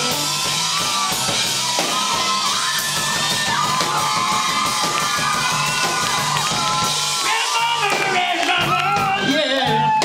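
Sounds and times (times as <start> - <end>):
crowd of girls cheering: 0.1 - 10.0.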